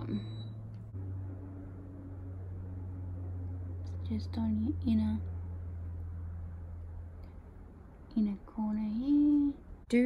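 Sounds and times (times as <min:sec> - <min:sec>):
low hum with overtones: 0:00.0 - 0:10.0.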